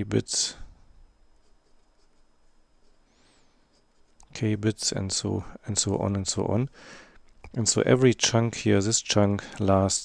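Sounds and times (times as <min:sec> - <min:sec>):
marker scratching on paper: 0:01.4 - 0:03.0, 0:03.6 - 0:04.2.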